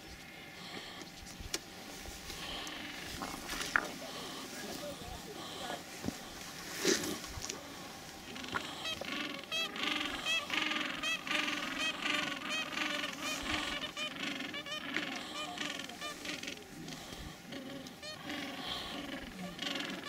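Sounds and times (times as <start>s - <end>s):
penguin colony calling: 1.8s - 20.0s.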